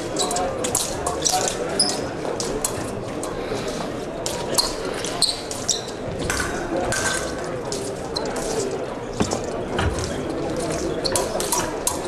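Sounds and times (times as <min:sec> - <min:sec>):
murmur of large hall: 0:00.0 - 0:12.0.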